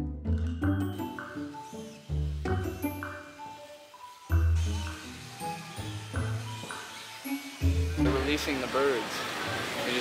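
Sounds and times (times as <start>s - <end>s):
background music with bass line: 0.0s - 1.5s.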